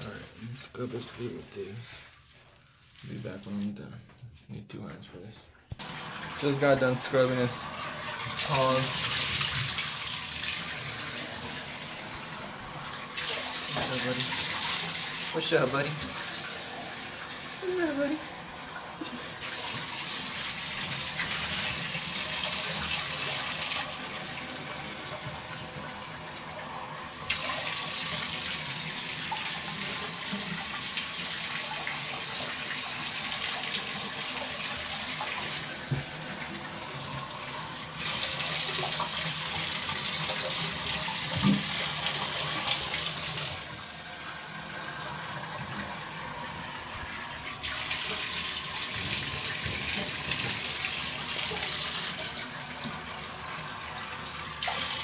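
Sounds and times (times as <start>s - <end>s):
water running into bathtub: 5.7s - 55.0s.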